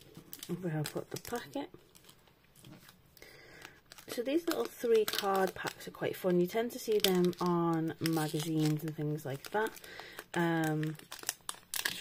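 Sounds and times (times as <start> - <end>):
foil wrapper crinkling: 0.0 - 12.0.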